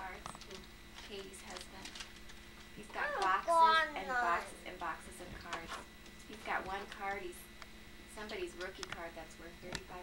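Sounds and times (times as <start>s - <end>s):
child's high voice: 3.4s - 4.6s.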